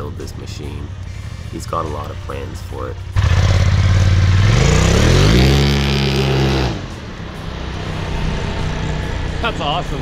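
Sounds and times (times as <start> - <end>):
turbocharged engine accelerating: 3.1 - 10.0.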